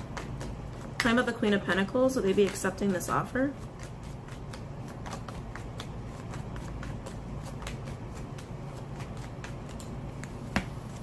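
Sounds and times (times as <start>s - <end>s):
cards being shuffled: 0.0s - 1.0s, 2.2s - 11.0s.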